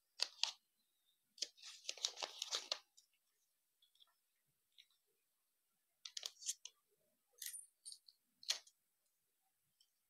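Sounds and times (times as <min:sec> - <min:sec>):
paper rustling and crackling: 0:01.4 - 0:03.0.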